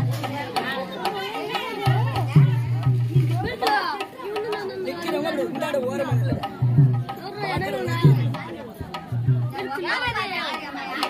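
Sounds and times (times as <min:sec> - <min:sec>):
voices speaking over each other: 0:00.0 - 0:11.0.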